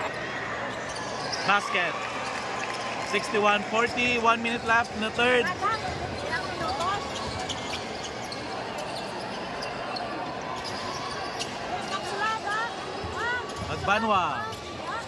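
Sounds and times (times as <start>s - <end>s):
crowd chatter and calls: 0.0s - 15.0s.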